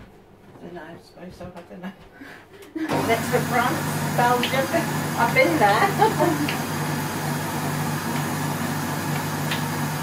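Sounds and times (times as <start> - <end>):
food processor motor running: 2.9 - 10.0.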